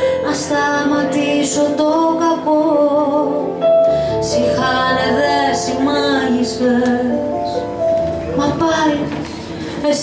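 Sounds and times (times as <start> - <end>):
instrumental accompaniment: 0.0 - 10.0
woman singing with vibrato: 0.1 - 3.6, 4.2 - 7.6, 8.3 - 10.0.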